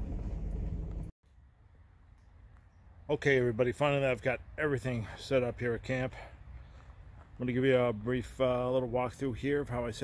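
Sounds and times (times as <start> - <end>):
truck rumbling on dirt road: 0.0 - 1.1.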